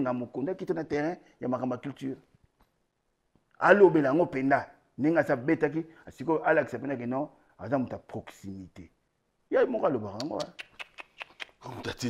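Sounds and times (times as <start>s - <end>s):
man speaking: 0.0s - 2.3s, 3.6s - 10.6s, 11.6s - 12.0s.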